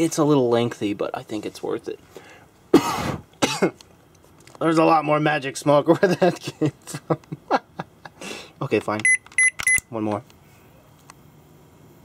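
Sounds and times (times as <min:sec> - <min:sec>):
man coughing: 0:02.7 - 0:03.8.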